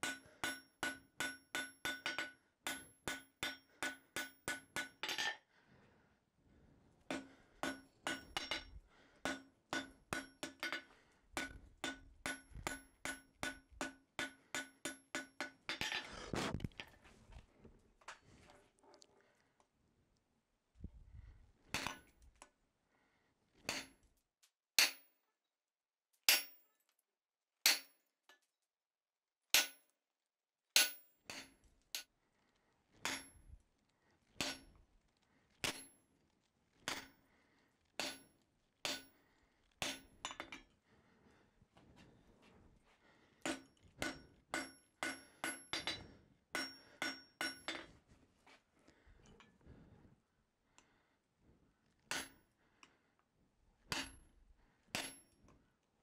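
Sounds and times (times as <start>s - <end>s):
hammer striking steel on anvil: 0.0s - 5.4s, 7.1s - 16.0s, 24.8s - 25.1s, 26.3s - 26.7s, 27.6s - 28.0s, 29.5s - 29.8s, 30.8s - 32.1s, 33.0s - 33.4s, 34.4s - 34.7s, 35.6s - 36.0s, 36.9s - 37.2s, 38.0s - 39.2s, 39.8s - 40.7s, 43.5s - 47.9s, 52.1s - 52.4s, 53.9s - 54.2s, 54.9s - 55.3s.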